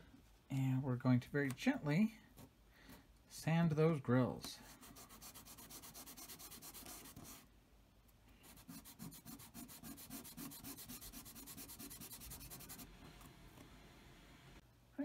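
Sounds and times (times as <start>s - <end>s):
plastic part rubbed on wet sandpaper: 4.7s - 7.4s, 8.4s - 13.0s.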